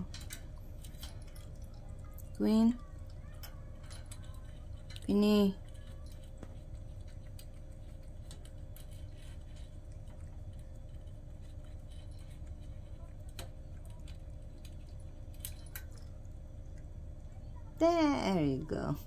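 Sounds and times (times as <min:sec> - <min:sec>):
cat eating from metal bowl: 0:00.0 - 0:17.9
low steady hum: 0:00.0 - 0:19.0.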